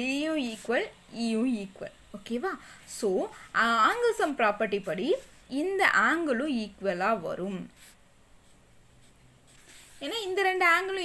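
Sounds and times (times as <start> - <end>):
pencil scratching on paper: 7.4 - 11.0.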